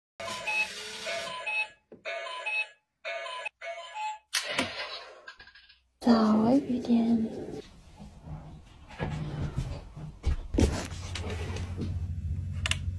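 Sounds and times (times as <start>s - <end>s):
digital alarm clock beeping: 0.2s - 4.3s.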